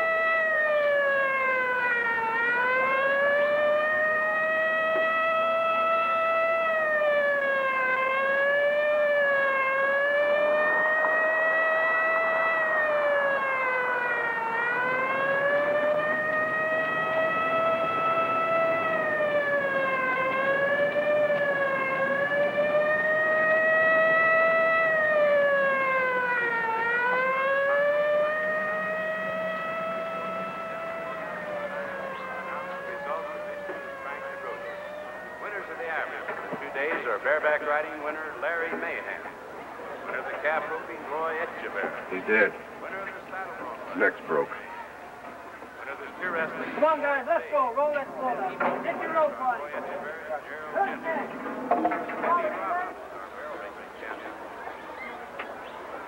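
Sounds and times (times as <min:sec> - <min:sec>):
emergency siren wailing: 0:00.0 - 0:56.0.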